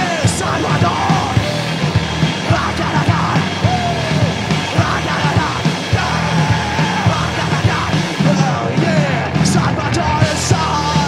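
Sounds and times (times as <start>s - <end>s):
punk rock band playing: 0.0s - 11.0s
person yelling vocals: 2.5s - 7.6s.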